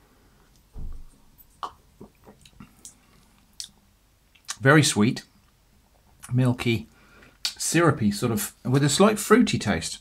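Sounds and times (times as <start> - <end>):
lip smacks and mouth clicks: 1.6 - 4.6, 7.4 - 7.6.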